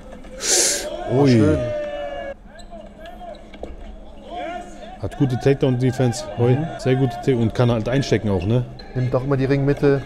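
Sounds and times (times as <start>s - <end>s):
faint voices: 0.0s - 3.4s.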